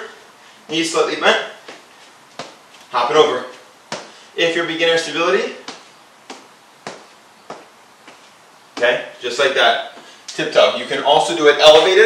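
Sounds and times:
shoes landing on concrete: 1.6 - 2.9, 3.9 - 4.2, 5.4 - 9.1.

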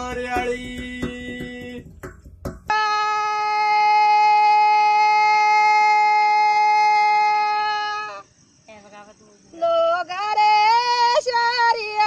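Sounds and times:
woman singing unaccompanied: 8.7 - 12.0.

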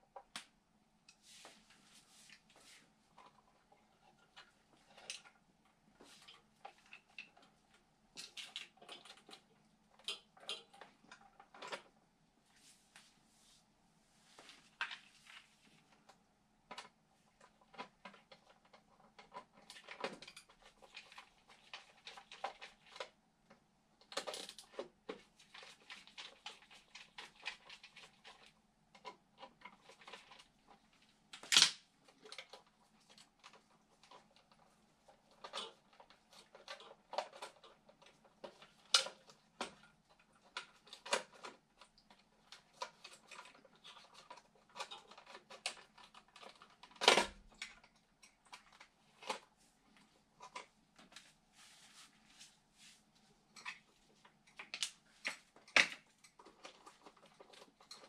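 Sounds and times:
hands clicking and tapping on wiring: 0.0 - 1.2, 2.4 - 12.0, 14.7 - 51.3, 53.5 - 58.0.

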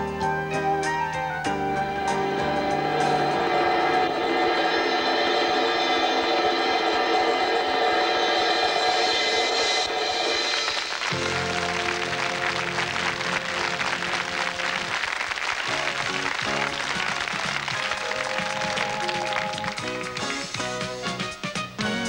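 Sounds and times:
band playing held chords: 0.0 - 22.0
audience applause: 10.2 - 21.2.

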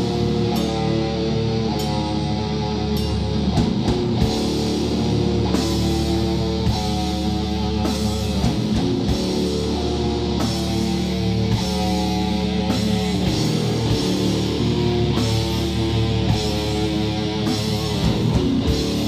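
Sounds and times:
heavy metal band playing: 0.0 - 19.0.

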